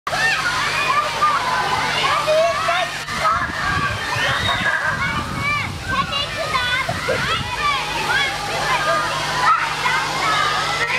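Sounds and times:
children shouting: 0.1s - 10.9s
hose water jet spraying: 0.1s - 10.9s.

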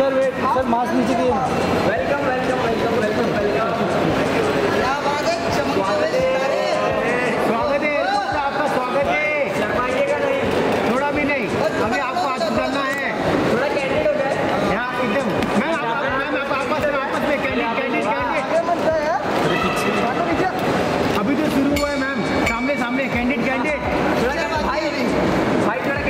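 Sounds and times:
people talking and calling out: 0.0s - 26.0s.

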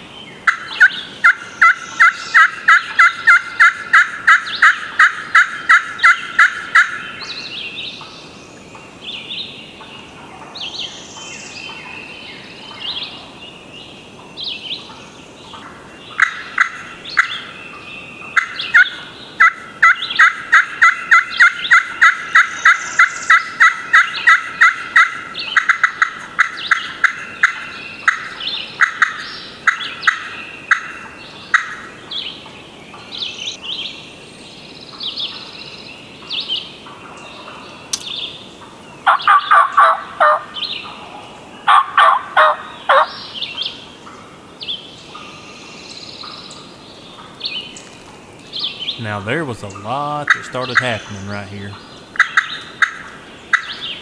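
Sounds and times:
wild turkeys calling: 0.5s - 7.1s, 15.6s - 17.5s, 18.4s - 31.9s, 36.8s - 41.0s, 41.6s - 43.2s, 47.1s - 53.9s.

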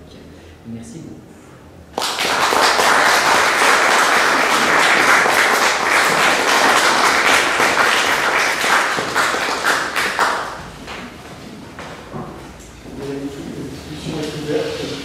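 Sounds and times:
audience clapping: 1.9s - 11.2s.

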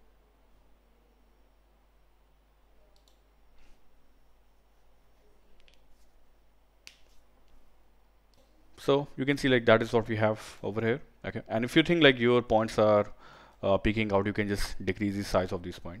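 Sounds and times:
computer mouse clicks: 2.9s - 3.3s.

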